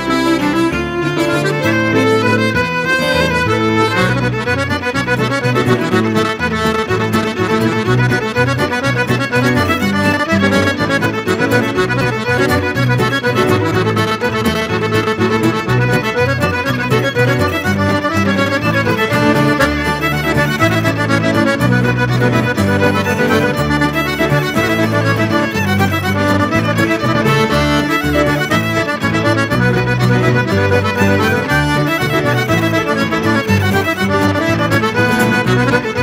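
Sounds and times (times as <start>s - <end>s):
button accordion: 0.0s - 36.0s
fiddle: 0.0s - 36.0s
guitar accompaniment: 0.0s - 36.0s.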